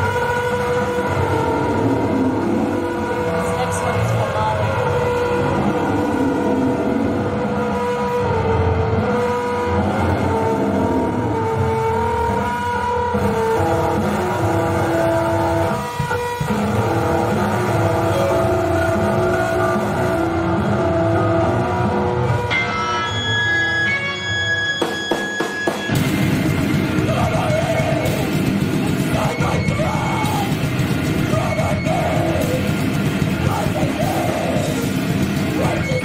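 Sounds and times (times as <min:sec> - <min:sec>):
distorted guitar: 0:00.0 - 0:36.0
drums: 0:00.0 - 0:36.0.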